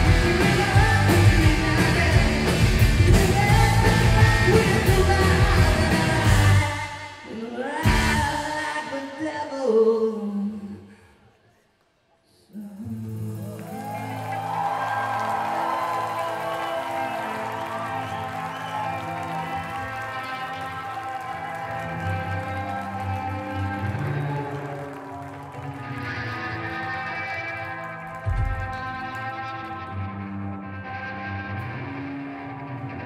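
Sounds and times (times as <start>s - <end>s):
droning electric guitar chords: 17.4s - 33.0s.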